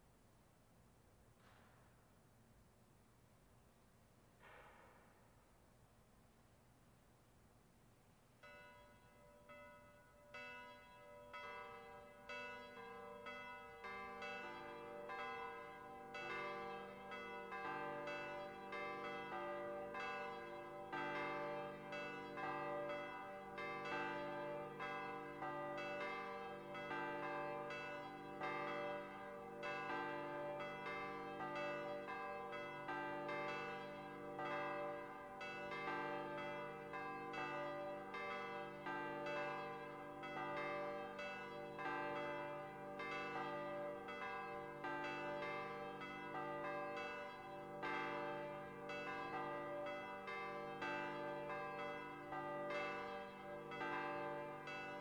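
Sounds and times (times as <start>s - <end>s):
church bells ringing: 8.4s - 55.0s.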